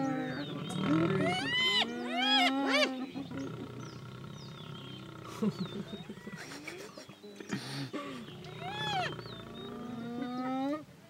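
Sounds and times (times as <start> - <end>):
hyenas squealing: 0.0 - 3.0, 8.4 - 10.4.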